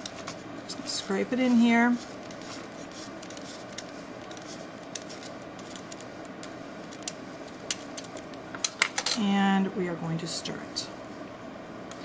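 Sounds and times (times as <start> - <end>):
background hum: 0.0 - 12.0.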